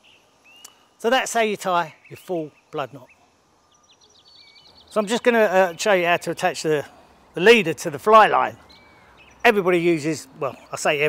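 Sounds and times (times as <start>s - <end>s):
birds chirping: 0.0s - 11.0s
man speaking: 1.0s - 3.1s, 4.9s - 8.6s, 9.4s - 11.0s.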